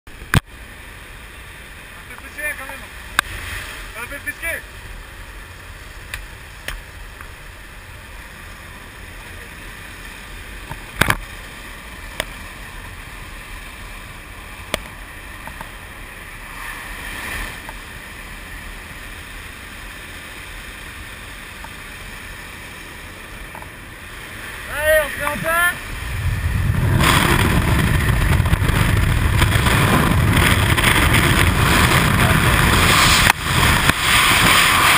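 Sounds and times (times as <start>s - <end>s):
aircraft engine noise: 0.1s - 34.9s
wind rushing: 24.6s - 34.9s.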